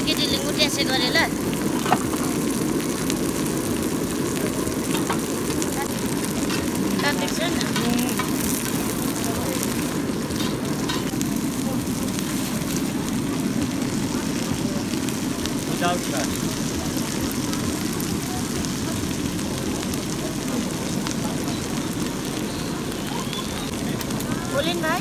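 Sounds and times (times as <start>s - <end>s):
low rumbling noise: 0.0s - 25.0s
vegetables sizzling on a griddle: 0.0s - 25.0s.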